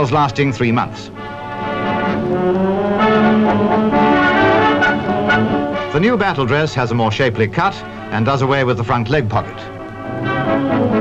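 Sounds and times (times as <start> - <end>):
brass chords: 0.0 - 11.0.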